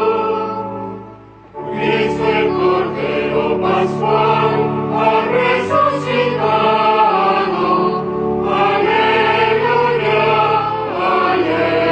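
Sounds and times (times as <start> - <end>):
choir singing a hymn: 0.0 - 11.9.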